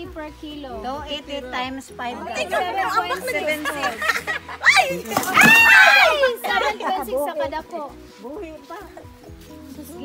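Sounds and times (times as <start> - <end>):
people chattering: 1.5 - 7.9
loud exclamation: 4.6 - 6.4.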